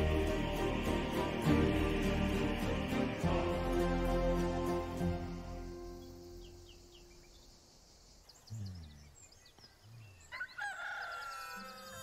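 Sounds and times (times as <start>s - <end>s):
gentle music: 0.0s - 7.8s
faint bird chirps: 5.7s - 12.0s
rooster crowing: 10.3s - 12.0s.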